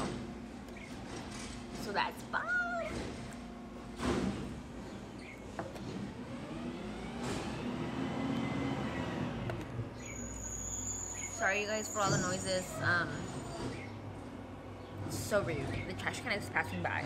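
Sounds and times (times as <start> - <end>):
garbage truck engine hum: 0.0 - 17.0.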